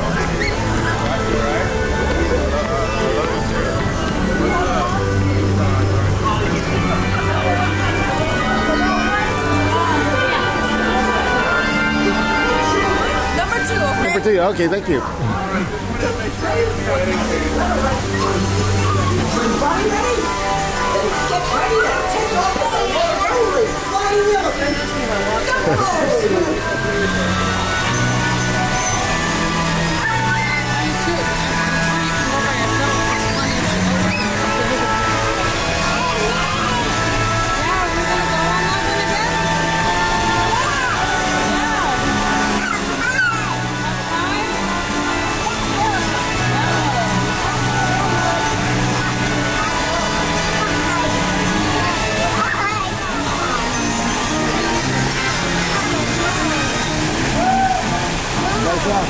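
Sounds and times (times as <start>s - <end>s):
crowd voices: 0.0s - 59.0s
fountain splashing: 0.0s - 59.0s
ride music playing: 0.0s - 59.0s.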